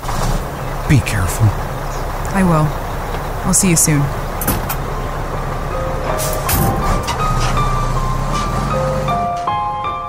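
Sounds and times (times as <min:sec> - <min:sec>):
engine low rumble: 0:00.0 - 0:10.0.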